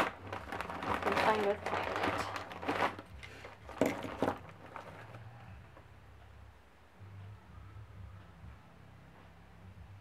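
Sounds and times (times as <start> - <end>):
plastic bag rustling: 0.0 - 5.3
faint low hum: 0.0 - 10.0.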